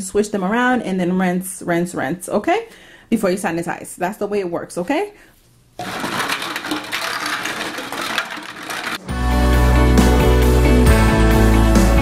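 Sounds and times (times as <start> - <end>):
glass bottles clinking: 5.8 - 9.1.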